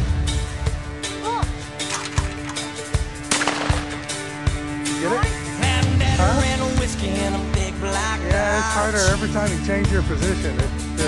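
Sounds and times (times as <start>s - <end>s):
country rock music with drums: 0.0s - 11.0s
shotgun shot: 3.3s - 4.2s.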